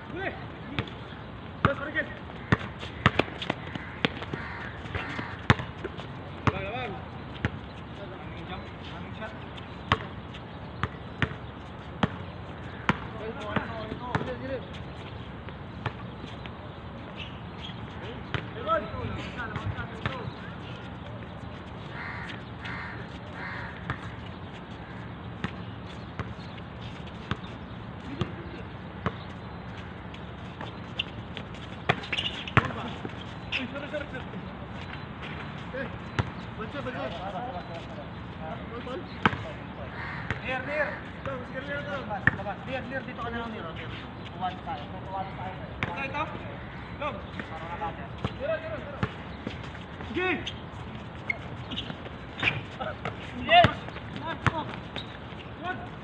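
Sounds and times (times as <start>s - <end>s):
players calling out: 0.0s - 7.2s, 16.0s - 25.7s, 26.5s - 56.0s
basketball bouncing on hard court: 2.5s - 5.7s, 9.9s - 10.1s, 10.8s - 11.4s, 12.8s - 14.4s, 31.9s - 32.9s.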